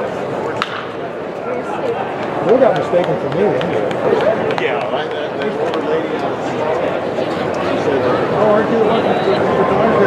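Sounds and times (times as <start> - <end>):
spectators talking: 0.0 - 10.0.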